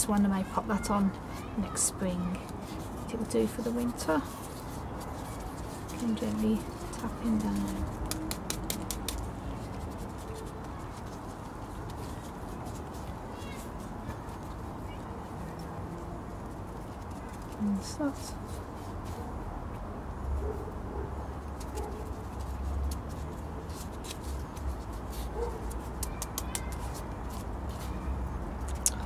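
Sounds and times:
potting mix scraping and crackling: 0.0s - 19.5s, 21.0s - 29.0s.

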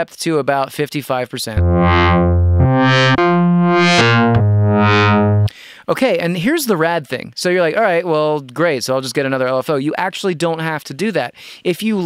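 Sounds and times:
synth playing sustained notes: 1.6s - 5.5s.

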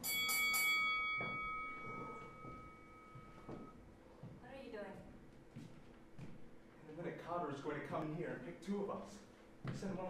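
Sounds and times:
bell-like chime ringing: 0.0s - 3.7s.

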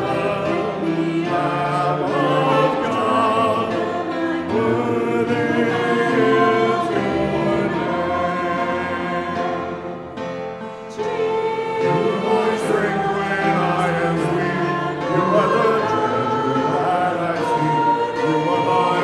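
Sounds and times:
choir singing a sacred song: 0.0s - 19.0s.

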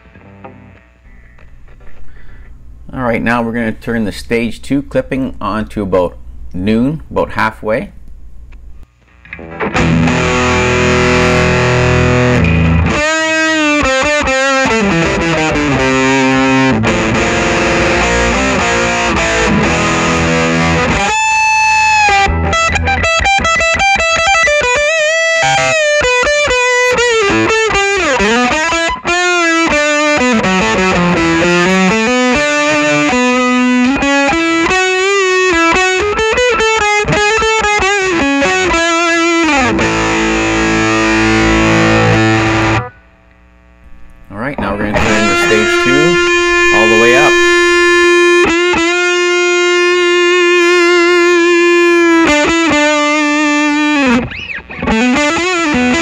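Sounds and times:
distorted electric guitar: 0.0s - 2.8s, 8.1s - 56.0s.

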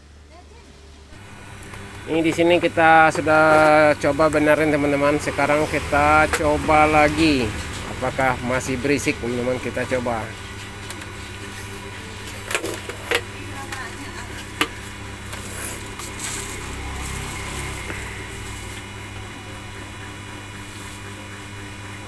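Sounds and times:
photocopier humming: 1.1s - 22.0s.

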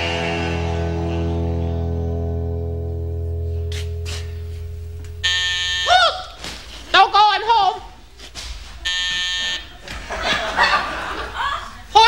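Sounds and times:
electric door buzzer: 3.5s - 5.9s, 8.9s - 9.7s
studio audience laughter: 9.6s - 11.9s.

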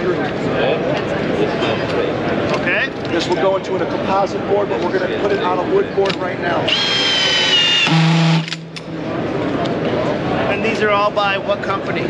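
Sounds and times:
exhibition hall murmur: 0.0s - 12.0s
cordless drill driving screw: 6.7s - 8.6s.

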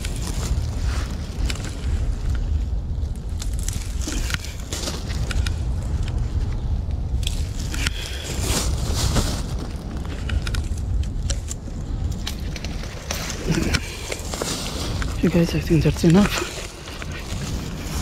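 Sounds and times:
handling noise crackles and clicks: 0.0s - 18.0s
wind rumbling on microphone: 0.0s - 18.0s.

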